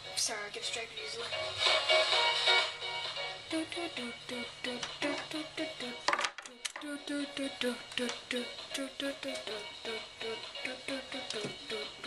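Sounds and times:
pop music from a radio: 0:00.0 - 0:12.0.

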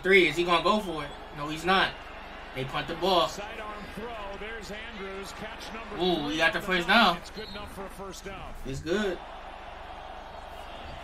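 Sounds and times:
live speech nearby: 0:00.0 - 0:09.2
television football commentator talking: 0:00.0 - 0:09.3.

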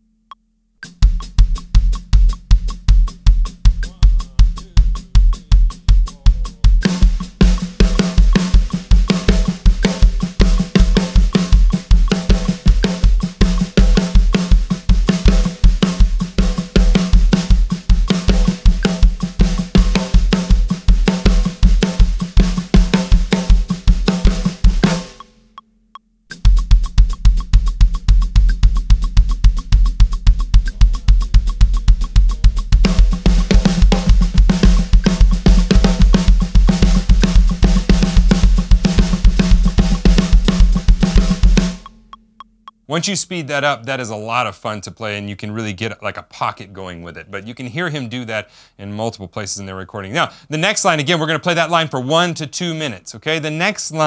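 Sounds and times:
drum kit rock groove: 0:00.8 - 0:25.4, 0:26.3 - 0:43.8.

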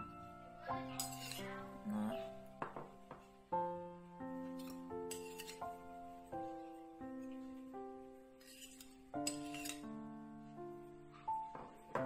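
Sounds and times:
background music with held notes: 0:00.0 - 0:12.0
spoon clinking on ceramic plate: 0:01.0 - 0:01.4, 0:08.4 - 0:09.9.

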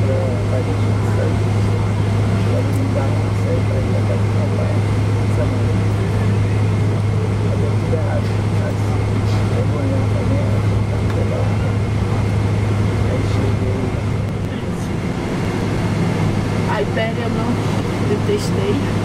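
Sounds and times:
aircraft engine and air-conditioning hum: 0:00.0 - 0:19.0
faint passenger chatter: 0:00.0 - 0:19.0.

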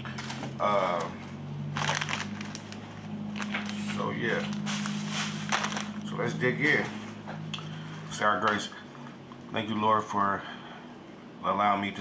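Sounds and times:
foil chip bag crinkling: 0:00.0 - 0:01.1, 0:01.7 - 0:06.4.

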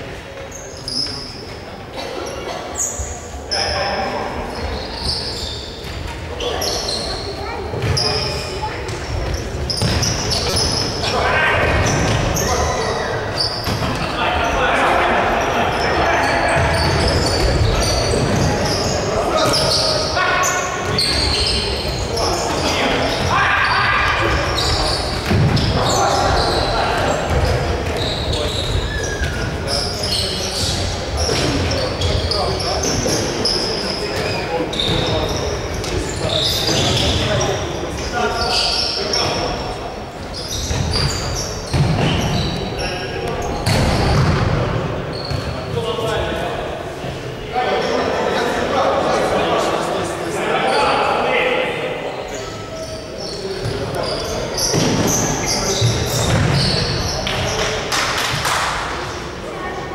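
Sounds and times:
shoes squeaking: 0:00.4 - 0:14.6, 0:15.3 - 0:44.4, 0:45.0 - 0:46.0, 0:52.2 - 0:57.8
players shouting: 0:14.0 - 0:29.6.

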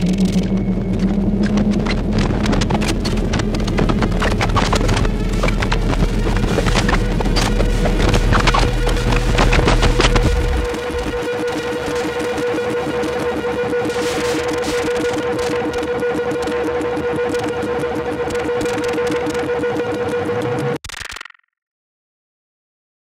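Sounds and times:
deep rumble: 0:00.0 - 0:17.6
rapid crackles: 0:00.0 - 0:21.2.

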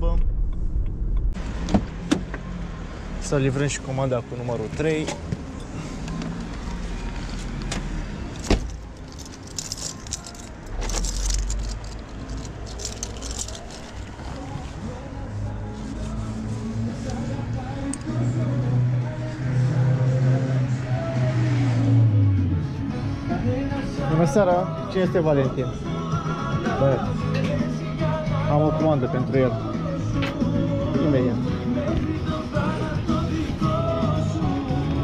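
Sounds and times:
car door shutting: 0:00.2 - 0:02.4, 0:07.6 - 0:08.8
background music: 0:02.5 - 0:35.0
bag rustling and clinking: 0:08.2 - 0:14.7.

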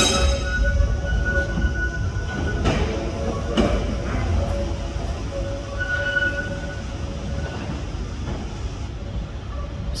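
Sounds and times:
high wheel squeal: 0:00.0 - 0:03.4, 0:04.2 - 0:07.9
train wheels rumbling: 0:00.0 - 0:10.0.

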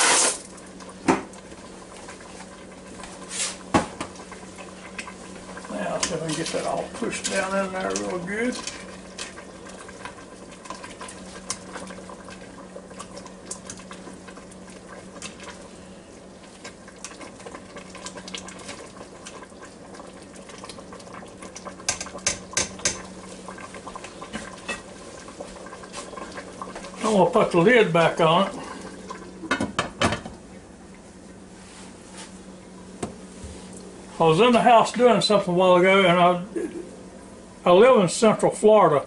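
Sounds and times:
steady low hum: 0:00.4 - 0:39.0.

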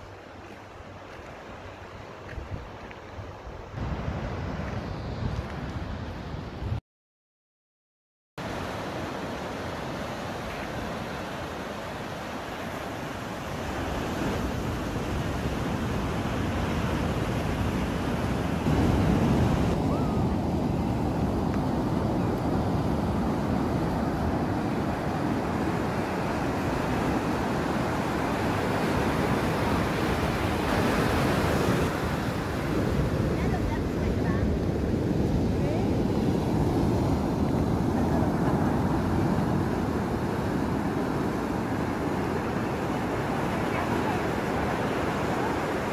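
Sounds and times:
ocean surf washing up a beach: 0:00.0 - 0:06.8, 0:08.4 - 0:45.9.

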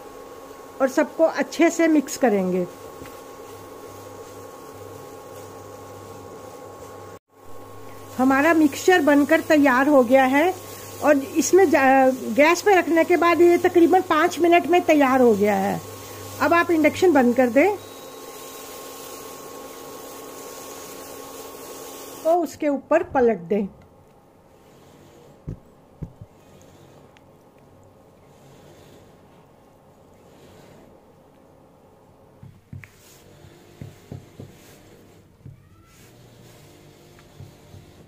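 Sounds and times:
cooling fan hiss: 0:00.0 - 0:22.6
cooktop electrical hum: 0:00.0 - 0:38.0.

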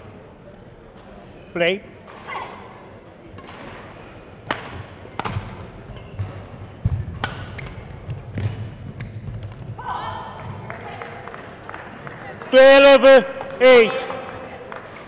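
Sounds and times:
racket striking shuttlecock: 0:04.4 - 0:07.8.

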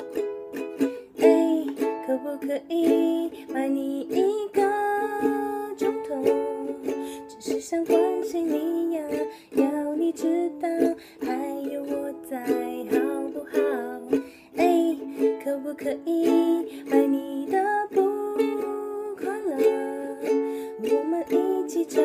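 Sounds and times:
ukulele strumming chords: 0:00.0 - 0:22.0
woman singing: 0:00.8 - 0:22.0.

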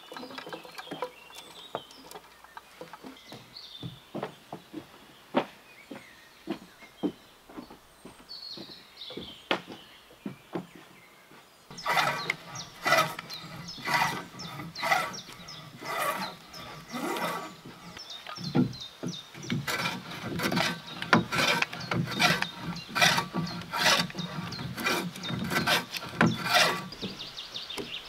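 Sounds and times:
hand plane rasping on wood: 0:11.7 - 0:18.8, 0:19.4 - 0:27.1.

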